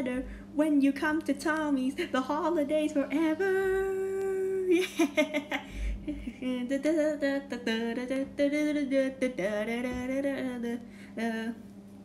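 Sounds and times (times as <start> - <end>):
girl singing unaccompanied: 0.0 - 4.7, 6.1 - 11.6
girl laughing: 4.6 - 6.4
girl humming: 5.8 - 6.7.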